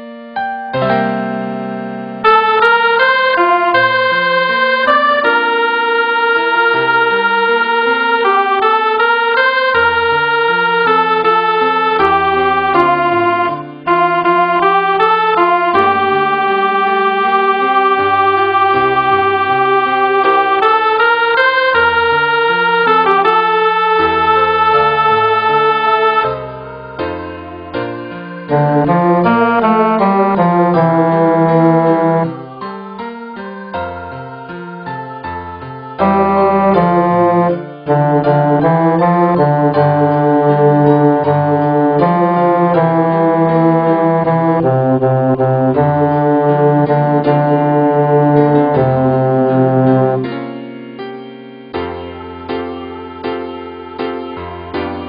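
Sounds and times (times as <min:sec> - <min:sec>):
piano accompaniment: 0:00.0 - 0:55.0
synthesized organ-like notes: 0:02.2 - 0:26.5, 0:27.2 - 0:32.6, 0:36.0 - 0:50.5.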